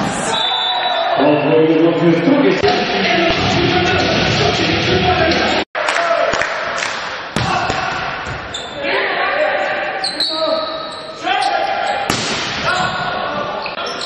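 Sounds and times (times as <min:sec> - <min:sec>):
echoing voices: 0:01.2 - 0:14.0
volleyball hits: 0:05.9 - 0:08.5
shoe squeaks: 0:08.5 - 0:08.8, 0:10.0 - 0:12.1, 0:13.7 - 0:14.0.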